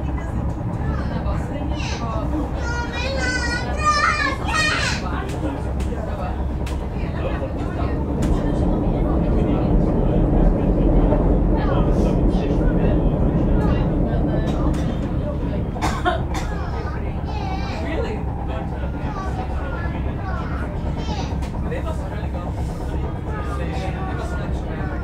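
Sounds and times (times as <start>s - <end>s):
passengers' voices: 0.0s - 25.0s
train rumbling on rails: 0.0s - 25.0s.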